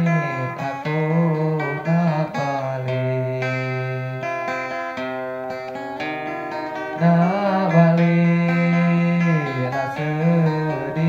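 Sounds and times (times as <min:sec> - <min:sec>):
man singing: 0:00.0 - 0:04.4, 0:06.7 - 0:11.0
plucked acoustic guitar: 0:00.0 - 0:11.0.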